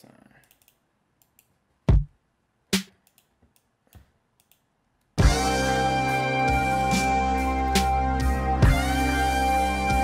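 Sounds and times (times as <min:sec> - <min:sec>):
soft mouse clicks: 0:00.4 - 0:01.6, 0:03.0 - 0:05.1
music loop with held tones: 0:01.9 - 0:02.1, 0:05.2 - 0:10.0.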